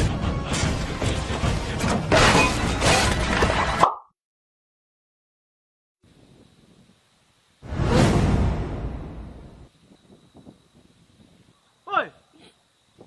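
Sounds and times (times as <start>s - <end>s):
whoosh: 7.6s - 9.7s.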